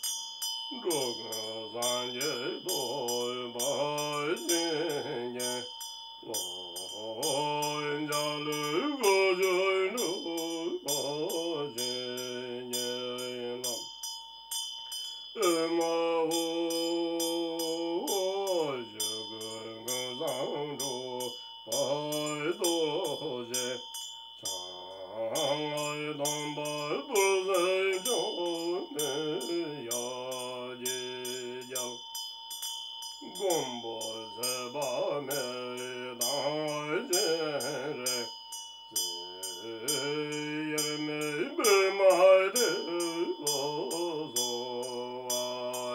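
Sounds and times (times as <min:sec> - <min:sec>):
man chanting solo: 0:00.8 - 0:13.8, 0:15.4 - 0:23.8, 0:24.4 - 0:32.0, 0:33.2 - 0:38.3, 0:39.0 - 0:45.9.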